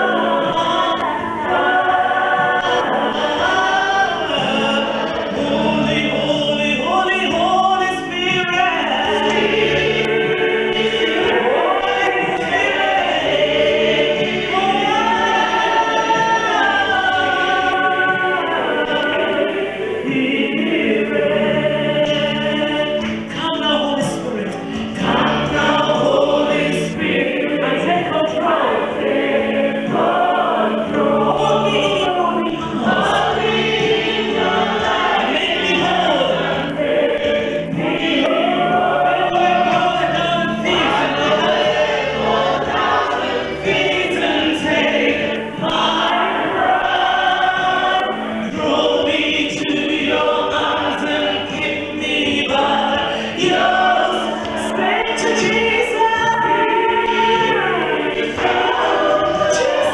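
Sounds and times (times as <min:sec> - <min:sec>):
congregation singing worship song: 0:00.0 - 0:59.9.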